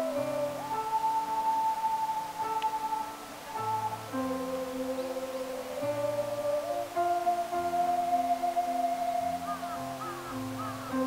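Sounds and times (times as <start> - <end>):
guitar and piano accompaniment: 0.0 - 11.0
ocarinas playing slow melody: 0.0 - 11.0.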